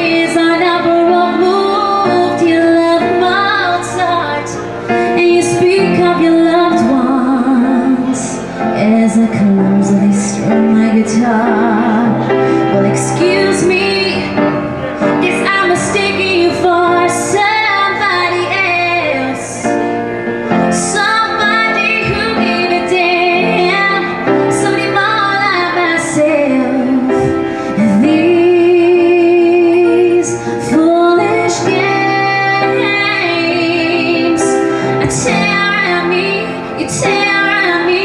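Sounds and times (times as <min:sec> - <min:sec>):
piano accompaniment: 0:00.0 - 0:38.0
woman singing a ballad: 0:00.0 - 0:38.0.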